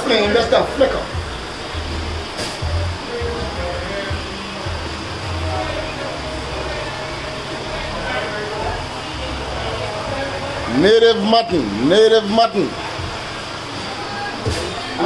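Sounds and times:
faint voices: 0:02.6 - 0:15.0.

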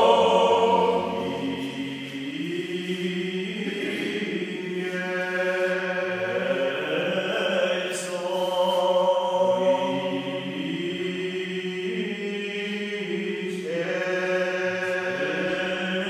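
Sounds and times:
men singing a cappella: 0:00.0 - 0:16.0.

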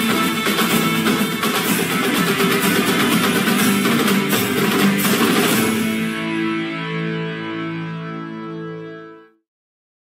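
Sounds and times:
loud music with guitar: 0:00.0 - 0:09.4.

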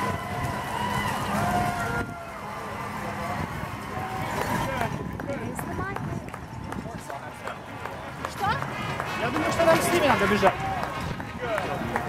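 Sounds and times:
crowd voices talking: 0:00.0 - 0:12.0.

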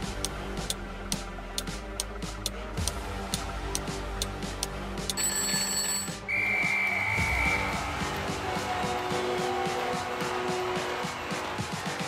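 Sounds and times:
electronic music with beat: 0:00.0 - 0:12.0
held electronic beep: 0:05.2 - 0:07.6.

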